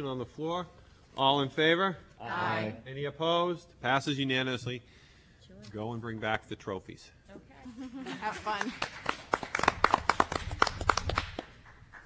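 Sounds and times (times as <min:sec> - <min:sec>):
people clapping: 0:08.1 - 0:12.0.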